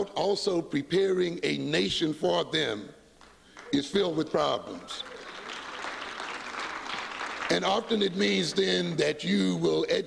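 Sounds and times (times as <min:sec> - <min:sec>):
audience applauding: 0:04.7 - 0:08.8.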